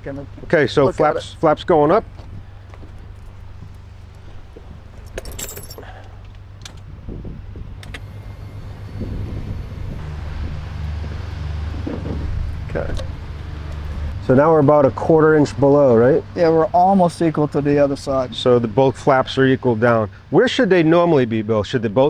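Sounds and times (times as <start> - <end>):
metallic jingle: 4.8 - 6.1
electric flap motor humming: 6.6 - 14.4.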